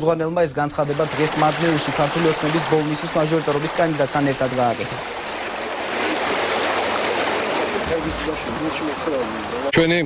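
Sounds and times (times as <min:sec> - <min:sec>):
river water rushing: 0:00.8 - 0:09.7.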